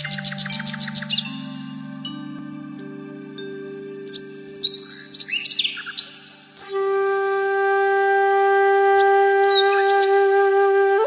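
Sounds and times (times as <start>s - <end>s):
birds chirping: 0.0s - 7.9s, 8.8s - 11.0s
calm background music: 0.0s - 11.0s
held flute note: 6.5s - 11.0s.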